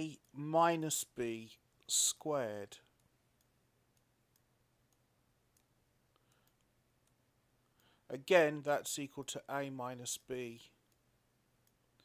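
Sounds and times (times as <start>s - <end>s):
faint clicks: 2.8s - 8.0s.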